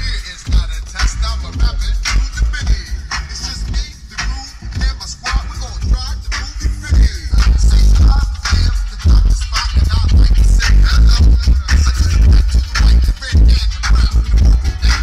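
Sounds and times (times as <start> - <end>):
hip hop music with heavy bass: 0.0 - 15.0.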